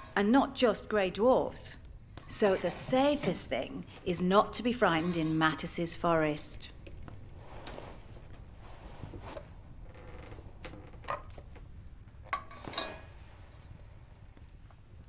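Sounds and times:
low steady background noise: 0:00.0 - 0:15.0.

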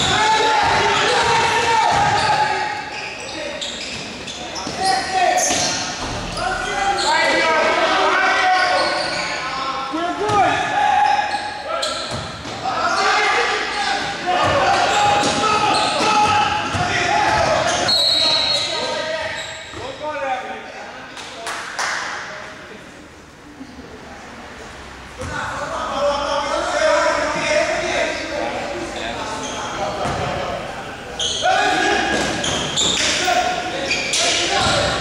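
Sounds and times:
players calling out: 0:00.0 - 0:20.2, 0:25.2 - 0:35.0
basketball bouncing on court: 0:00.6 - 0:02.4, 0:12.0 - 0:12.6, 0:16.0 - 0:17.8, 0:30.0 - 0:30.3.

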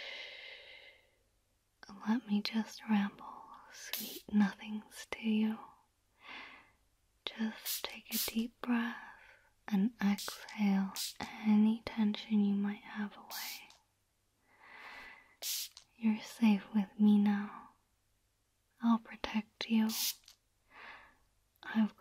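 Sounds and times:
woman whispering: 0:01.8 - 0:05.8, 0:07.2 - 0:13.8, 0:15.4 - 0:17.8, 0:18.8 - 0:20.2, 0:21.6 - 0:22.0.

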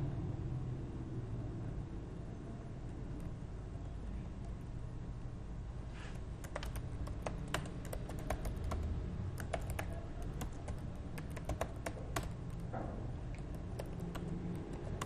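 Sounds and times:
low steady hum: 0:00.0 - 0:15.0
computer keyboard typing: 0:06.2 - 0:12.7, 0:13.3 - 0:15.0.

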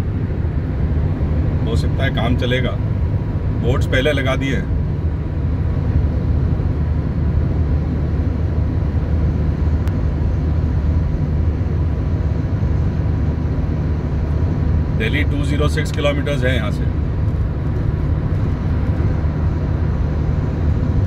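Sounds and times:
car cruising low rumble: 0:00.0 - 0:21.0
road and tyre noise: 0:00.0 - 0:21.0.

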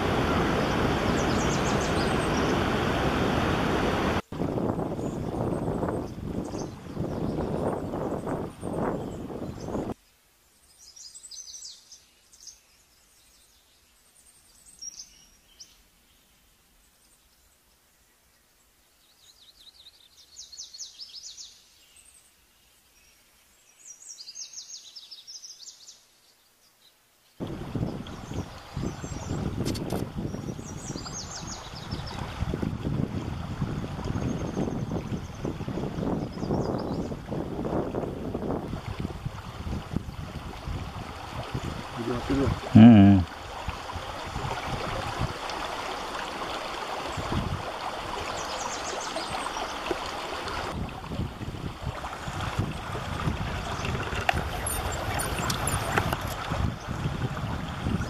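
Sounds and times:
stream running over rocks: 0:00.0 - 0:09.8, 0:27.4 - 0:58.0
bird song with scratchy phrases: 0:01.2 - 0:02.6, 0:36.0 - 0:37.2, 0:42.0 - 0:43.2, 0:53.7 - 0:56.9.

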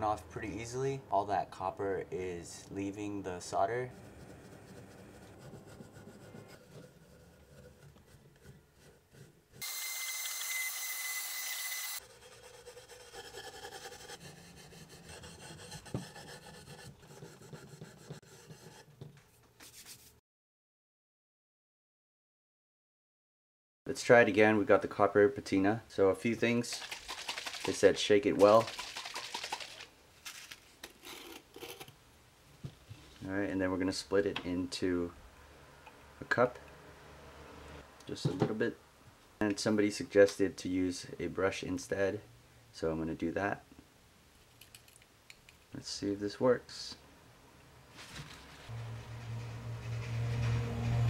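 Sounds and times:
plastic bottle shaken and rattling: 0:26.5 - 0:30.8.

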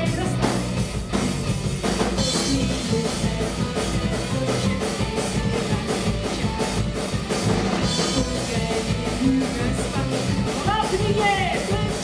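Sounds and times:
drum kit beat: 0:00.0 - 0:12.0
live folk-rock band: 0:00.0 - 0:12.0.

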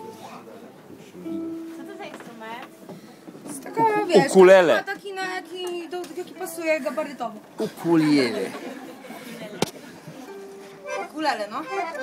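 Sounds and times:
faint room murmur: 0:00.0 - 0:12.0.

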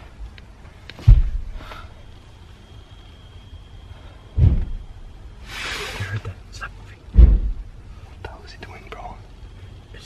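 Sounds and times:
loud deep thud: 0:01.0 - 0:01.6, 0:04.4 - 0:05.0, 0:07.1 - 0:07.8
short hiss: 0:05.4 - 0:06.2.

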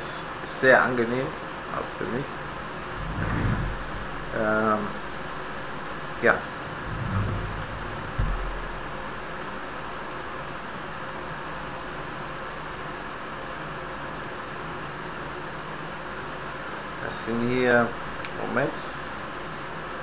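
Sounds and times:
steady background hiss: 0:00.0 - 0:12.6, 0:15.0 - 0:20.0
soft low thump: 0:02.8 - 0:05.6, 0:06.4 - 0:09.3.

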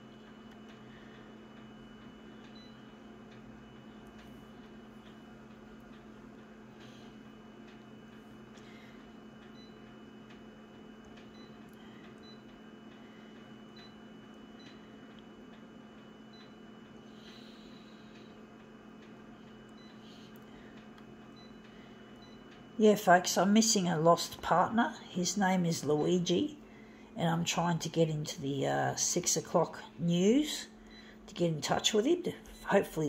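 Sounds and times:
photocopier humming: 0:00.0 - 0:33.0.

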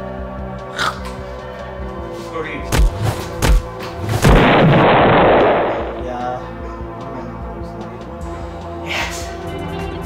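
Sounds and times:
explosion bang with rumble: 0:04.2 - 0:06.2.

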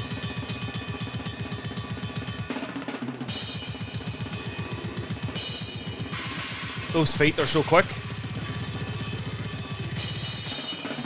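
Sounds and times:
fast metal drumming: 0:00.0 - 0:11.0.

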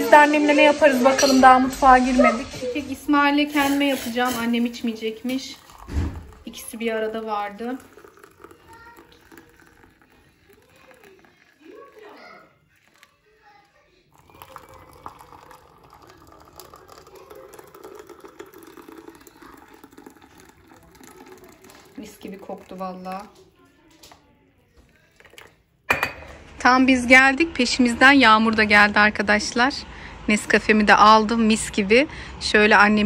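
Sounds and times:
distant voices: 0:00.0 - 0:33.0
water pouring into a mug: 0:02.9 - 0:24.2, 0:24.8 - 0:26.3.

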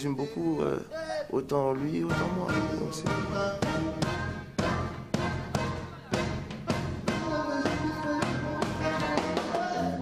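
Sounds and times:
band playing held chords: 0:02.0 - 0:10.0
drum kit hits: 0:03.1 - 0:09.7.

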